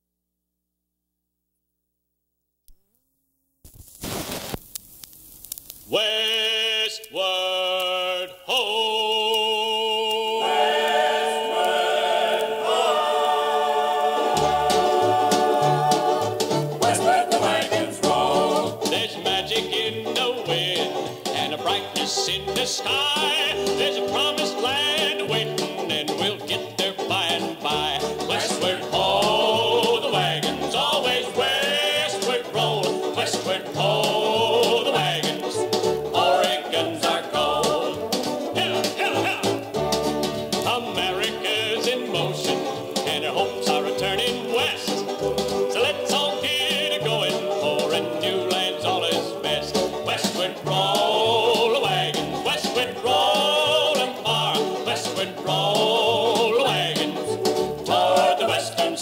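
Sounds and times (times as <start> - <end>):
record surface clicks: 3.6 - 6.4
country-western song with band: 6.0 - 59.0.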